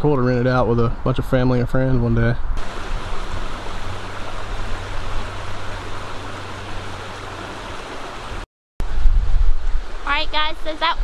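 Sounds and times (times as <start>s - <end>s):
creek flowing over rocks: 2.6s - 8.4s.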